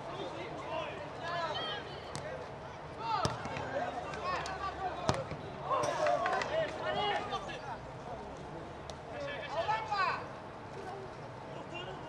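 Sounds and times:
football kick thuds: 3.2 - 3.6.

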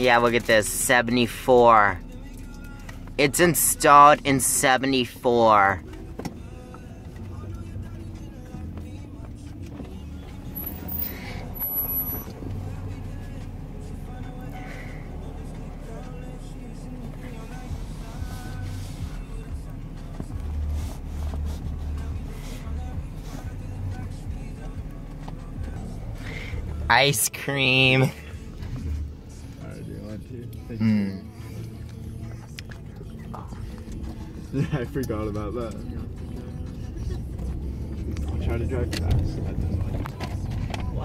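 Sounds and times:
car engine idling: 0.0 - 41.0
music playing low: 0.0 - 41.0.

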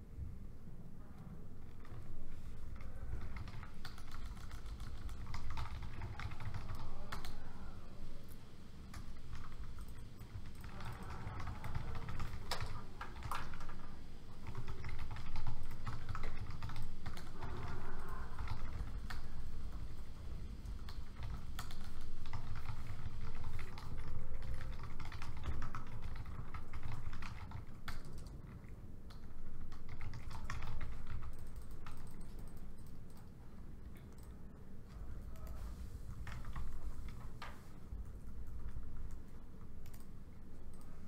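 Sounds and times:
laptop keyboard typing: 1.6 - 33.4, 34.0 - 34.4, 35.3 - 41.0.

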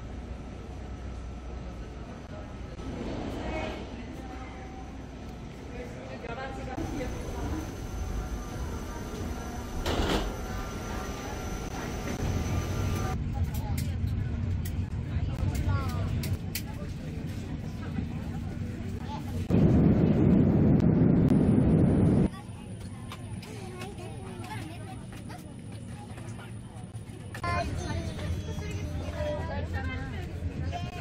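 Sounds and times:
loud steady rush of noise: 0.0 - 13.3, 16.9 - 22.4
passengers boarding: 0.0 - 31.0.

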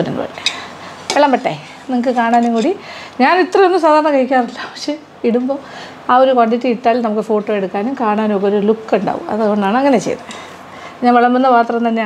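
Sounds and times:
metal spoon clinking on bowl: 0.4 - 1.3.

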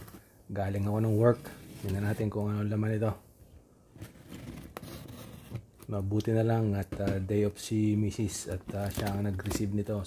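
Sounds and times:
hand scraping cardboard parcel: 4.0 - 5.7.

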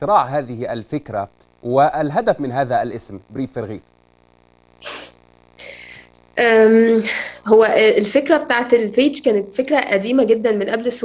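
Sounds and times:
faint steady hum: 0.0 - 11.0
person breathing: 4.8 - 6.2, 7.0 - 7.5.

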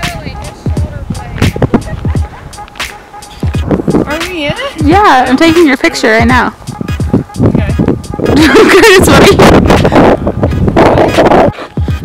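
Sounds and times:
wind buffeting microphone: 0.0 - 12.0
person laughing: 8.2 - 10.1.

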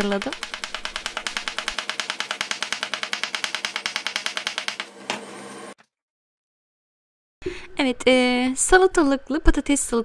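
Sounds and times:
knife chopping on wooden board: 0.1 - 5.2.

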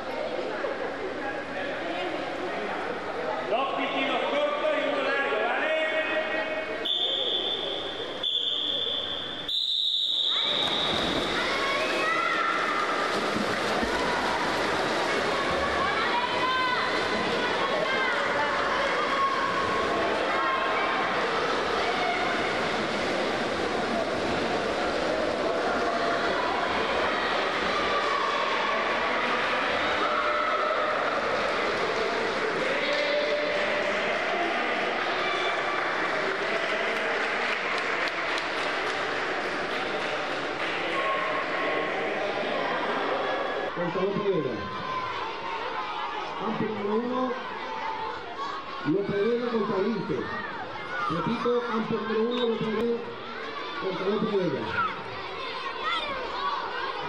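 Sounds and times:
children shouting and cheering: 10.4 - 13.1, 13.9 - 22.5, 25.9 - 31.7, 44.4 - 57.0.

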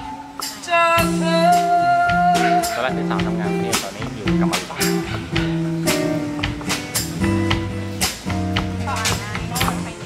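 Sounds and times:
live band playing: 0.0 - 10.0.

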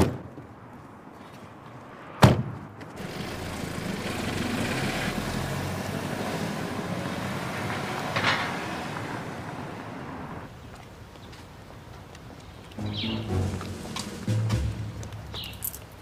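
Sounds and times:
car driving off: 3.0 - 10.5, 12.8 - 15.7.

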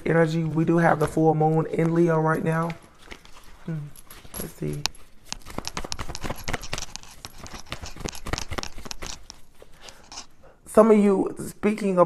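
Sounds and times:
cards being shuffled: 0.4 - 10.4.

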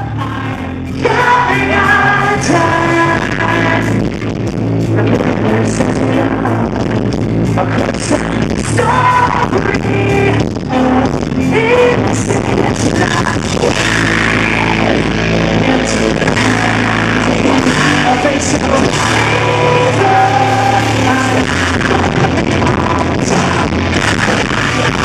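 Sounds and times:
distorted electric guitars: 0.0 - 25.0
drums: 0.0 - 25.0
vocalist singing: 0.0 - 25.0.

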